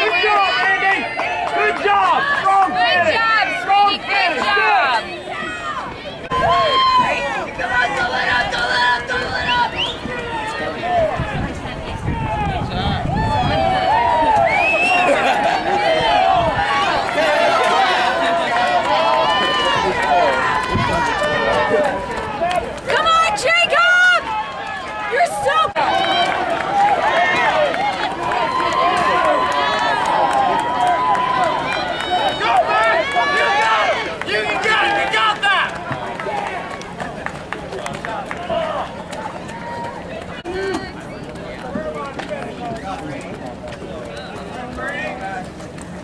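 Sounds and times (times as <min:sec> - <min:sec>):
spectators talking and calling out: 0:00.0 - 0:46.0.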